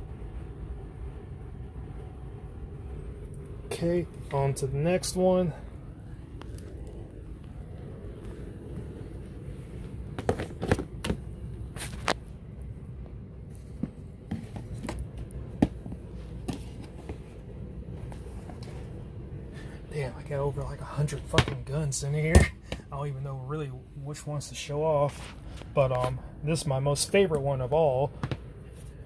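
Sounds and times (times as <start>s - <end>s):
low room hum: 0.0s - 29.0s.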